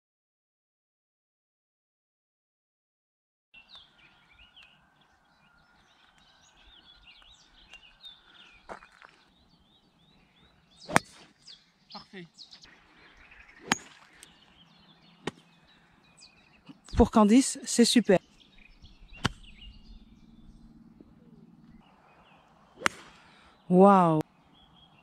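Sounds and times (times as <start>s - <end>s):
birds chirping and singing: 3.6s - 25.0s
golf club striking ball: 10.8s - 11.3s, 13.6s - 14.4s, 19.1s - 20.5s, 22.8s - 23.2s.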